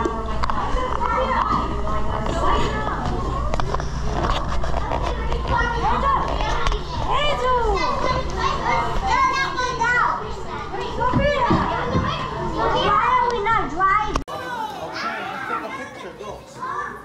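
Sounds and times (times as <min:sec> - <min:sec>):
children shouting and squealing: 0:05.2 - 0:17.0.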